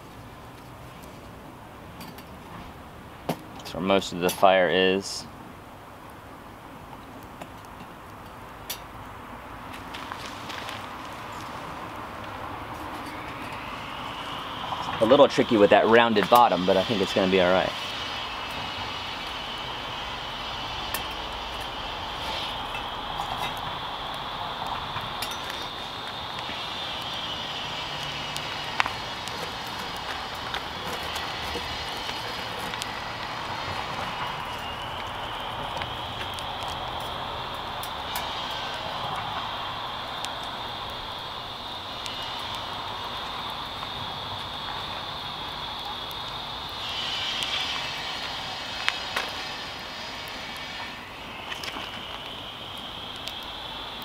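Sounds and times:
wood fire crackling: 0:00.0 - 0:54.0
steady high buzz: 0:08.7 - 0:54.0.

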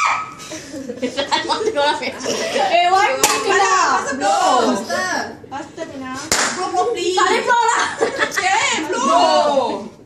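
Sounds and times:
hand clapping: 0:06.3 - 0:06.6.

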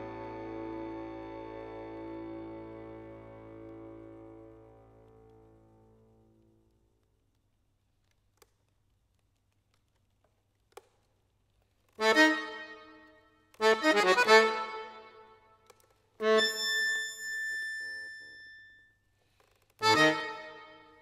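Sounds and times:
accordion playing loud chords: 0:00.0 - 0:04.9, 0:12.0 - 0:15.4, 0:16.2 - 0:17.3, 0:19.8 - 0:21.0.

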